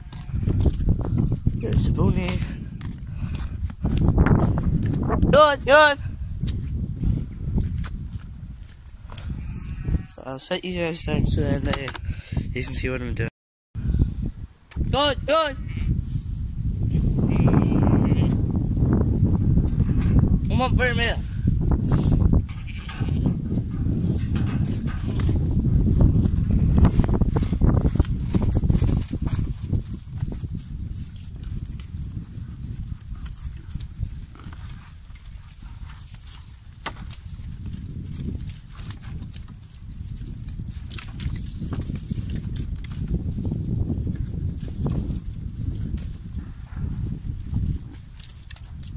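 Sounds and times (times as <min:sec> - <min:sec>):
lambs eating at metal trough: 0:00.0 - 0:05.0, 0:19.6 - 0:48.9
wind buffeting microphone: 0:00.0 - 0:48.9.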